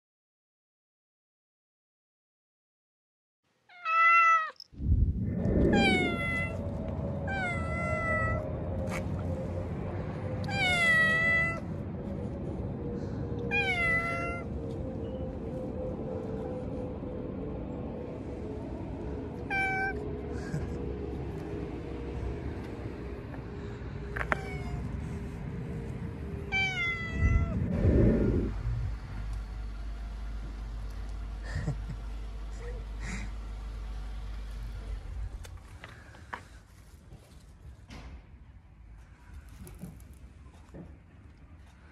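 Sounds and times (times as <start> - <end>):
cat meowing: 3.7 - 4.6, 5.7 - 6.6, 7.3 - 8.4, 10.4 - 11.6, 13.5 - 14.5, 19.5 - 20.0, 24.2 - 24.9, 26.5 - 28.5
low rumble: 4.6 - 36.2.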